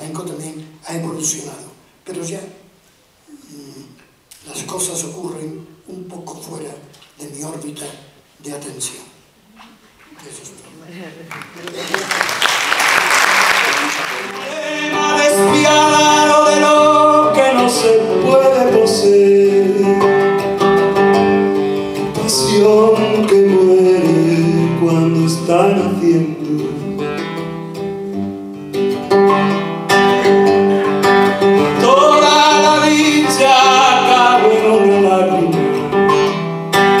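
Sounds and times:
classical guitar: 14.1s - 37.0s
man singing into a microphone: 14.4s - 20.3s, 22.1s - 27.0s, 31.7s - 35.8s.

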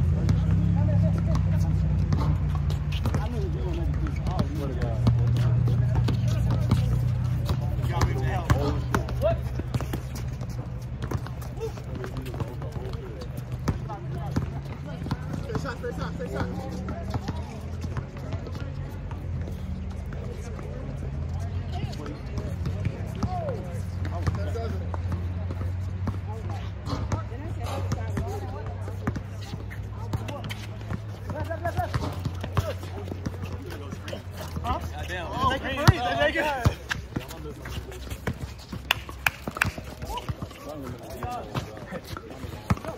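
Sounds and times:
voices of players: 0.0s - 42.9s
basketball bouncing on hard court: 1.2s - 15.7s, 22.0s - 34.8s, 35.4s - 42.9s.

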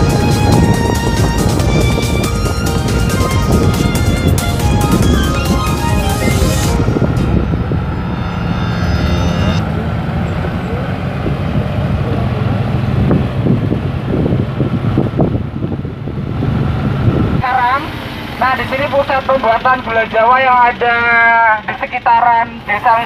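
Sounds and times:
background music: 0.0s - 9.8s
vehicle engine and road noise: 0.0s - 23.0s
man talking through a microphone: 17.4s - 23.0s.

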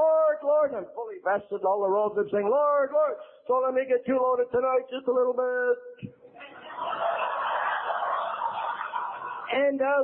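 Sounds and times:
audience laughing: 6.4s - 9.5s.

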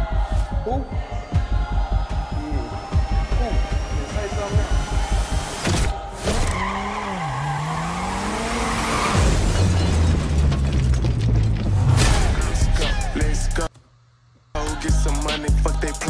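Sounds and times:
rapping over a heavy beat: 0.0s - 5.2s, 12.4s - 13.7s, 14.6s - 16.0s
car engine revving: 3.2s - 10.4s.

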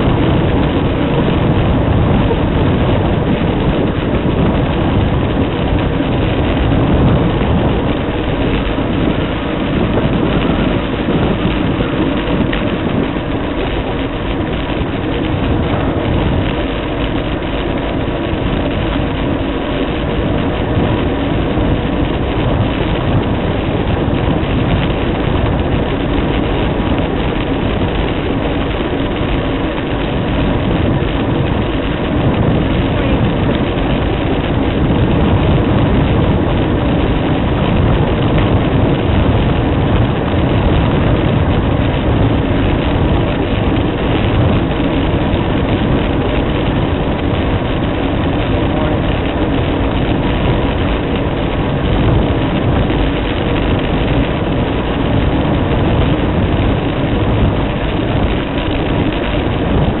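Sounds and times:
tyre road rumble: 0.0s - 60.0s
wind rushing: 0.0s - 60.0s.

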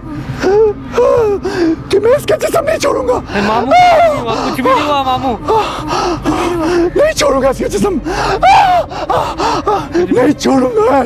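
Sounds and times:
man gasping and crying out: 8.0s - 10.2s.

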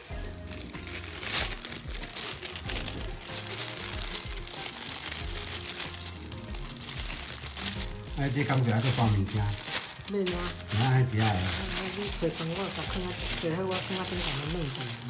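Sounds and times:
background music: 0.0s - 15.0s
plastic bag crinkling: 0.0s - 15.0s.

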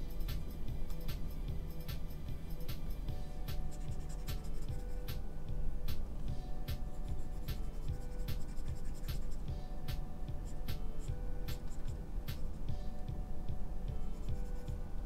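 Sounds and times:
background music with low bass: 0.0s - 15.0s
stylus tapping on drawing tablet: 2.7s - 5.2s, 5.9s - 14.9s.

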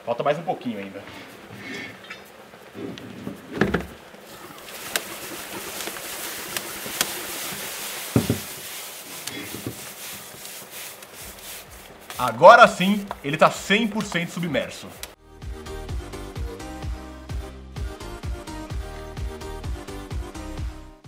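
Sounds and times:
liquid nitrogen hissing and boiling: 0.0s - 15.2s.

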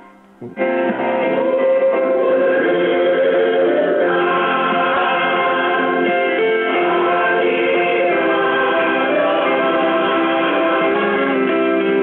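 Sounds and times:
choir singing with accompaniment: 0.7s - 12.0s.

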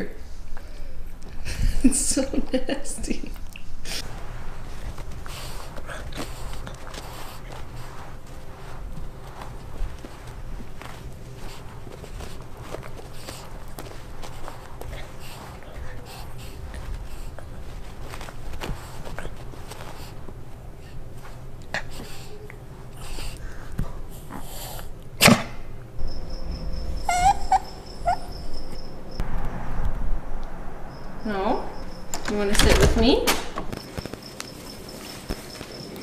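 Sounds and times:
dog rubbing on carpet: 3.9s - 23.4s, 34.0s - 36.0s
dog whimpering: 26.2s - 29.2s.

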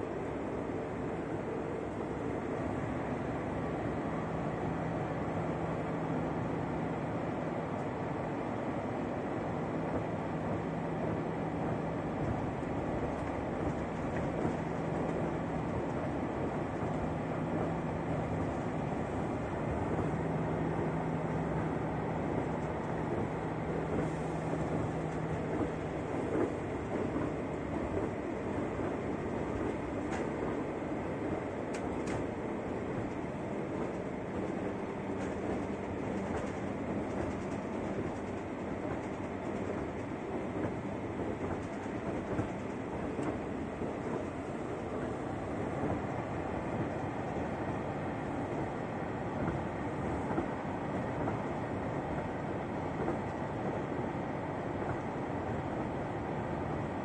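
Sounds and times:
low engine hum: 0.0s - 57.0s
train wheels rumbling: 8.4s - 57.0s.

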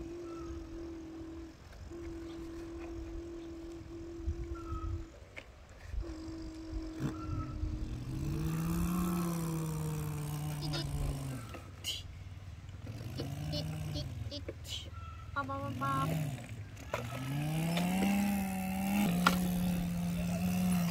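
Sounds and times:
person imitating truck engine: 0.0s - 5.2s, 5.9s - 12.2s, 12.8s - 20.9s
vocal beeps imitating horn: 13.2s - 14.8s.

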